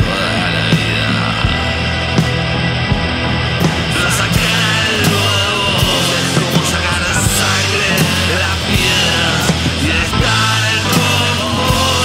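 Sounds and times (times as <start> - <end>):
drum hits: 0.0 - 12.0
rock band playing: 0.0 - 12.0.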